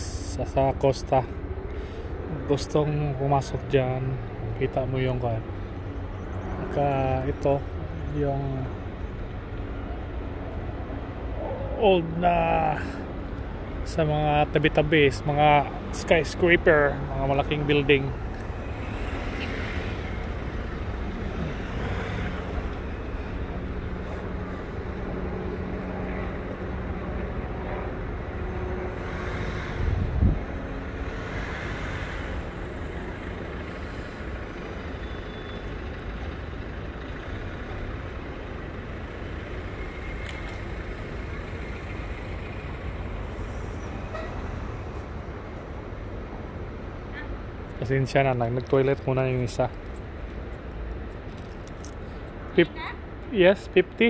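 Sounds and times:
city traffic rumble: 0:00.0 - 0:54.0.

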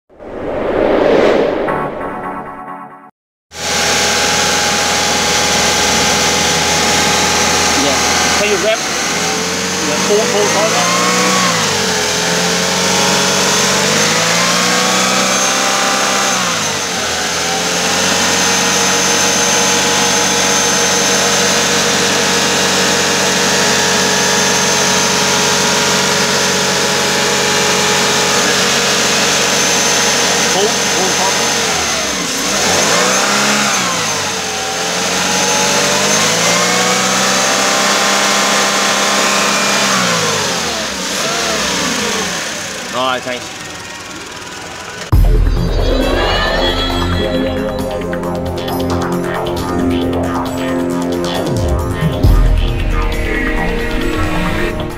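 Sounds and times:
engine revving: 0:03.5 - 0:54.9.

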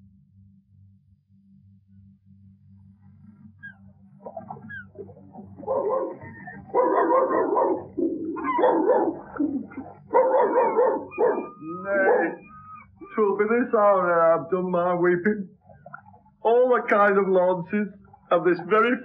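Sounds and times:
steady low hum: 0:00.0 - 0:19.0
person imitating dog whining: 0:04.3 - 0:13.2.

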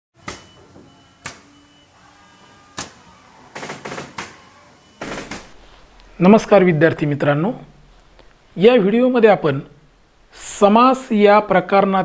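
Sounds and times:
sharp hits: 0:05.0 - 0:05.6.

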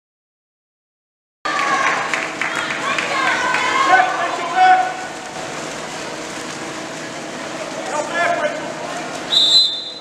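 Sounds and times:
water splashing from swimmers: 0:01.5 - 0:10.0.

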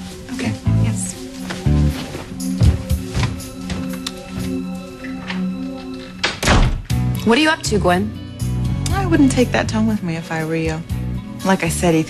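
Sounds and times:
soft background music: 0:00.0 - 0:12.0
door shutting: 0:06.2 - 0:06.9.

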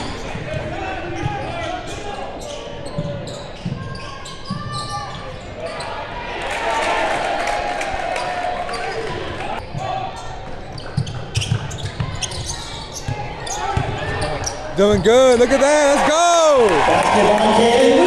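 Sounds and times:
spectators' voices: 0:00.0 - 0:10.9, 0:11.6 - 0:18.0.

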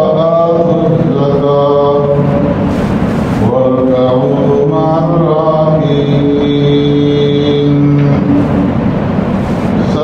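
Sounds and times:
man chanting: 0:00.0 - 0:02.6, 0:03.4 - 0:08.6, 0:09.8 - 0:10.0.

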